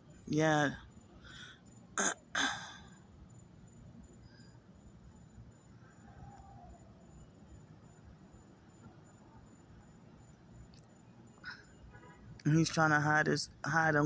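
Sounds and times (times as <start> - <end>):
woman sighing: 2.3 - 2.9.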